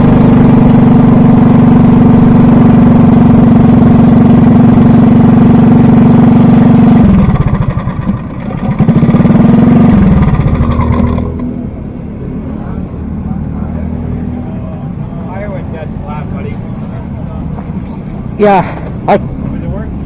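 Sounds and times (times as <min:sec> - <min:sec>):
kart engine running: 0:00.0 - 0:11.9.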